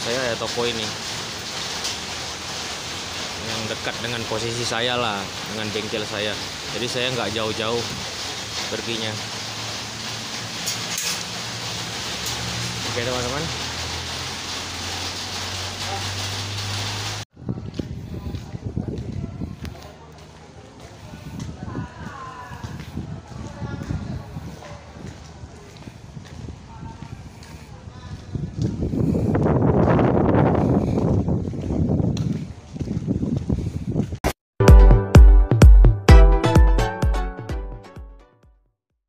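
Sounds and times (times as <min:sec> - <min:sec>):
steady rain hissing: 0:00.0 - 0:31.8
wind buffeting microphone: 0:17.3 - 0:34.2.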